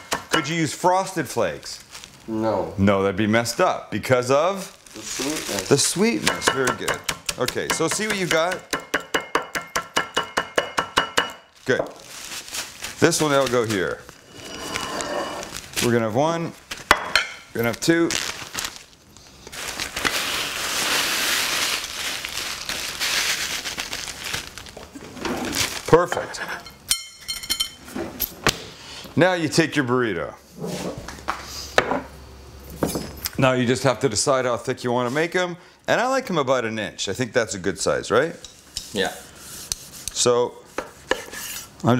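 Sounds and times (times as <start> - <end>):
tortilla chips rustling: 1.6 - 2.3, 4.6 - 6.2, 11.5 - 14.8, 15.4 - 16.0, 17.6 - 26.0.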